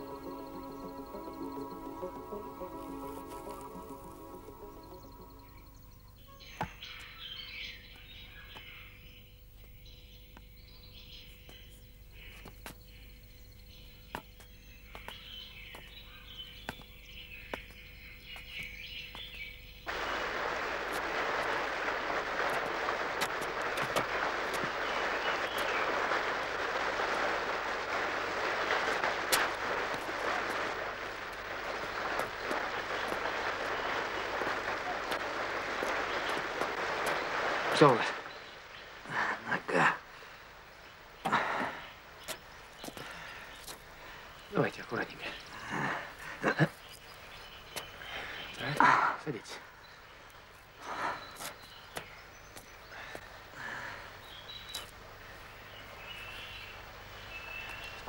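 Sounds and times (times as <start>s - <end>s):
bird calls: 0.0s - 58.0s
waterfall and stream over rocks: 14.1s - 58.0s.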